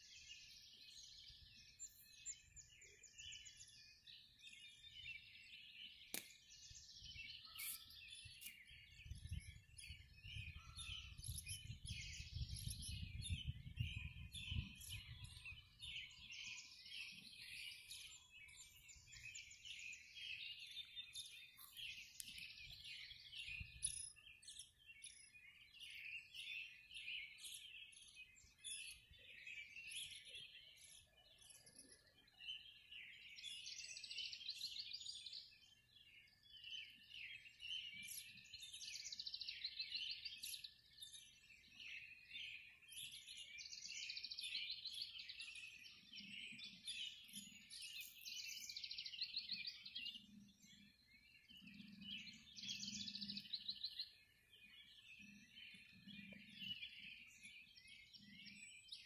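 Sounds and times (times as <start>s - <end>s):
small birds chirping: 0.0s - 59.0s.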